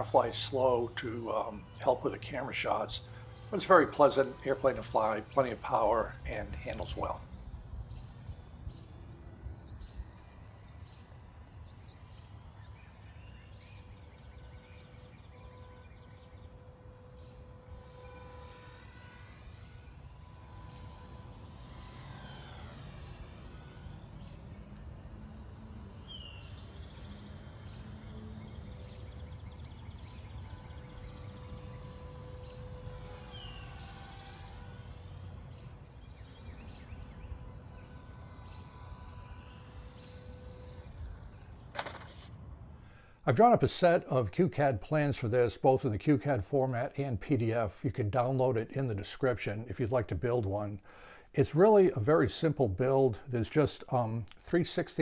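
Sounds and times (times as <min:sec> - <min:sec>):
model plane motor whine: 0:00.0 - 0:44.3
low outdoor rumble: 0:00.0 - 0:54.4.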